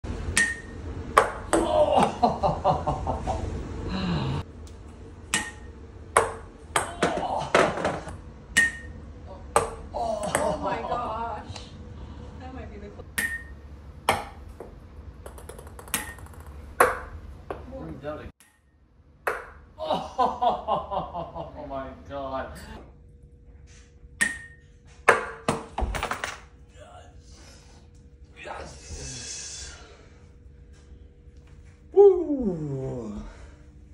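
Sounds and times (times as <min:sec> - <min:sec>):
ball pinging on ceramic plate: 0:00.3 - 0:01.6, 0:05.3 - 0:07.2, 0:08.5 - 0:10.5, 0:13.1 - 0:17.6, 0:18.4 - 0:19.7, 0:24.2 - 0:25.6
ball bouncing knocks: 0:05.3 - 0:08.9, 0:14.1 - 0:17.7, 0:19.2 - 0:19.6, 0:25.1 - 0:26.4.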